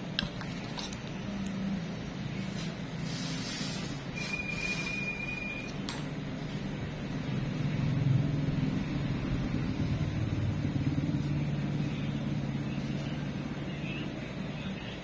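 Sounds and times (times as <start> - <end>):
vehicle engine passing by: 7.1 - 13.5.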